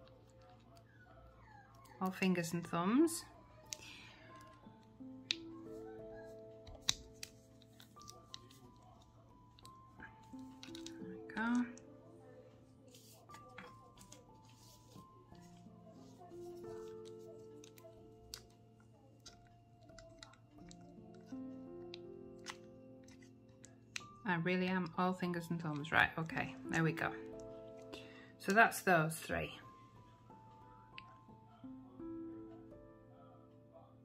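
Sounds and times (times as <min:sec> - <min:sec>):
soft background music: 0:00.0 - 0:34.0
plastic nail tips clicking: 0:06.6 - 0:11.8, 0:19.2 - 0:24.2.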